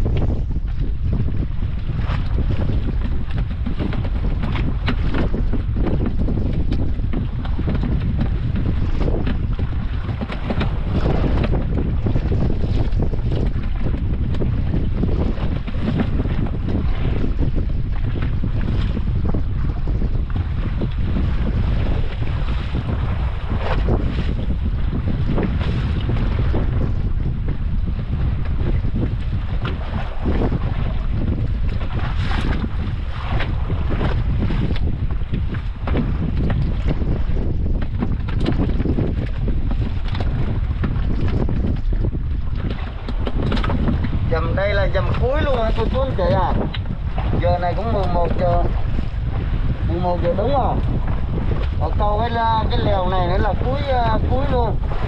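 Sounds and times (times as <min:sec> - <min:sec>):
waves splashing against boat hull: 0:00.0 - 0:55.0
wind buffeting microphone: 0:00.0 - 0:55.0.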